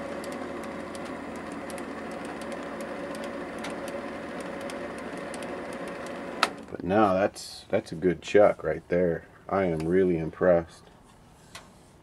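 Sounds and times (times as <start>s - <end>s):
lathe humming: 0.0s - 6.8s.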